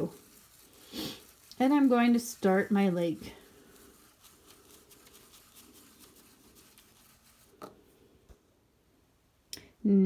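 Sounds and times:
crayon scratching on paper: 0.0 - 7.6.

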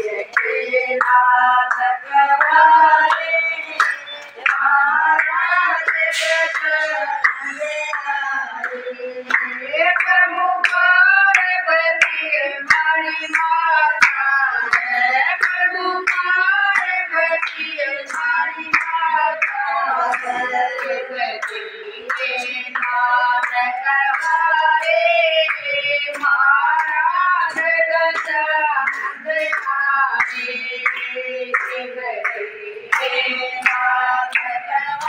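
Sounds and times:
hands clapping along: 0.0 - 35.0
women singing devotional song: 0.0 - 35.0.

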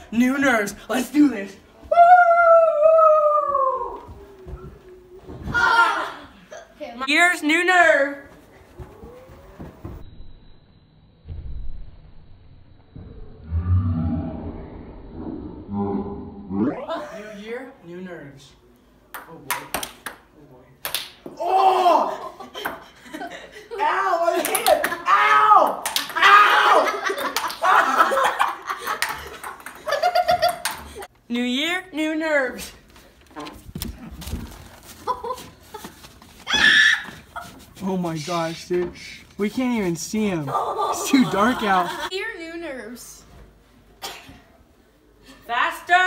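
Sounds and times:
boys whooping and laughing: 1.8 - 6.8, 21.3 - 31.1, 35.0 - 37.6, 40.5 - 42.1
faint rising vocal sound: 2.7 - 6.5, 12.9 - 17.0.

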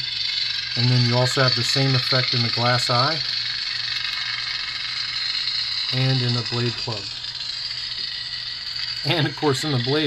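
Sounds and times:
crackling lightsaber hum: 0.0 - 10.0.

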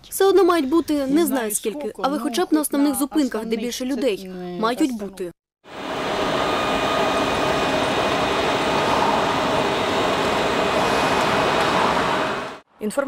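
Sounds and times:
faint high whine: 5.7 - 12.6
street sound: 5.7 - 12.6
tram equipment humming: 5.7 - 12.6.

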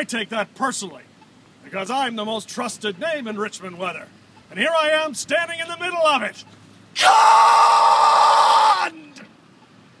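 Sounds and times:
man yelling: 7.0 - 9.1.

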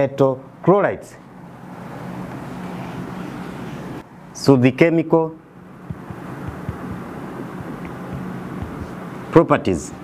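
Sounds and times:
eraser rubbing on whiteboard: 5.9 - 9.1.

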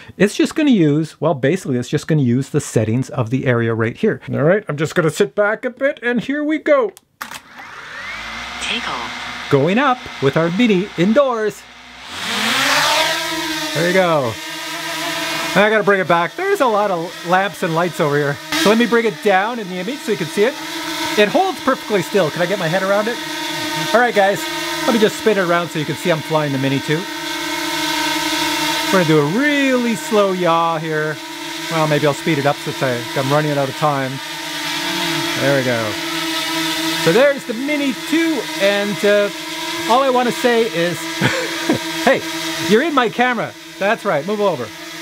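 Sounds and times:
drone propellers whirring: 7.2 - 45.0.

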